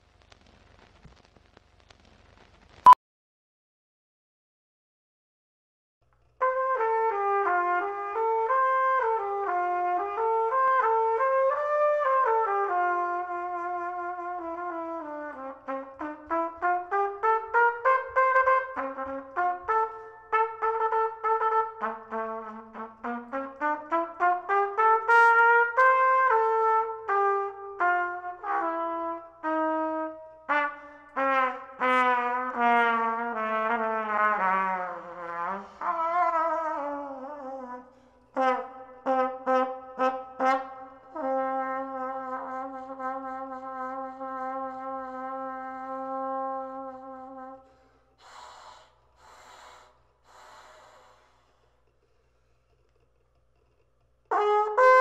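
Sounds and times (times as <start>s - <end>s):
lower brass part: 6.4s - 47.9s, 54.2s - 55.0s
trumpet melody: 6.4s - 47.9s, 54.2s - 55.0s.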